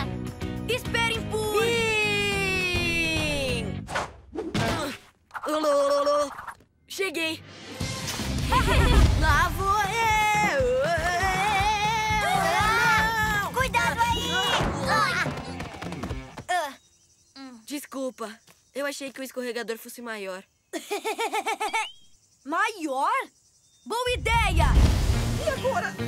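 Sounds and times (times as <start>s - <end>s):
background music: 0.0s - 4.0s, 7.0s - 16.4s, 24.7s - 26.0s.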